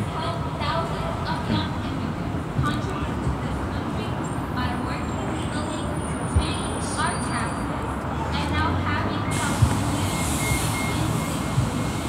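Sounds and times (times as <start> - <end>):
faint voices: 0.0 - 11.9
city street traffic: 0.0 - 12.0
hiss of passing traffic: 7.0 - 12.0.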